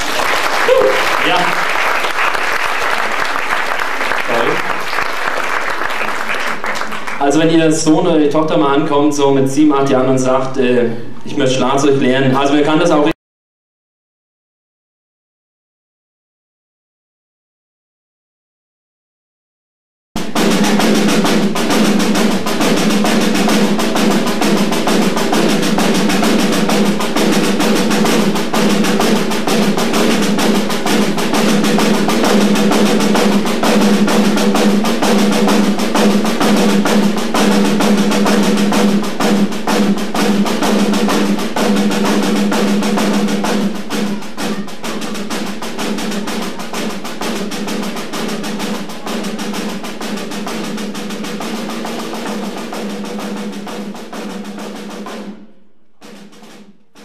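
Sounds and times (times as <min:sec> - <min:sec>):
snare drums playing rolls: 0:00.0 - 0:09.0, 0:20.2 - 0:57.0.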